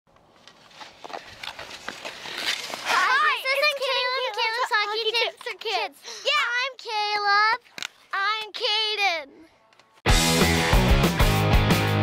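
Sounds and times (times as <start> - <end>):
clicks and scrapes: 0.4 - 3.0.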